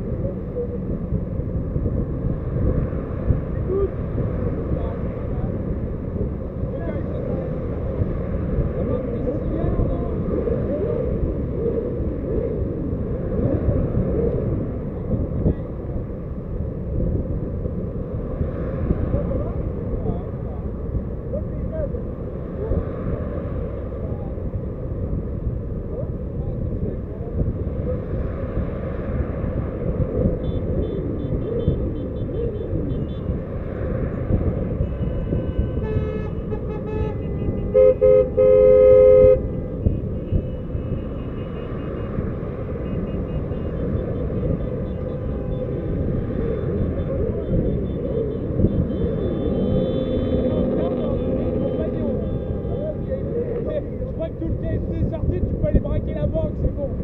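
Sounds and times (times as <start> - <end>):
car wind and road noise: 0.0 - 57.0
car horns honking: 30.4 - 33.5, 34.7 - 53.3.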